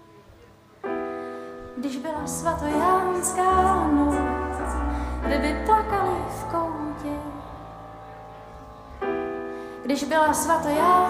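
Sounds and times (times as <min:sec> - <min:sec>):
keyboard chords: 0:00.0 - 0:11.0
woman singing: 0:01.7 - 0:07.8, 0:09.8 - 0:11.0
low bass line: 0:03.5 - 0:09.6.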